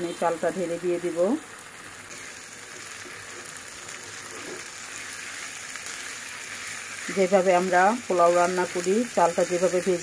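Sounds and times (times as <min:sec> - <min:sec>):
rice sizzling in a wok: 0:00.0 - 0:10.0.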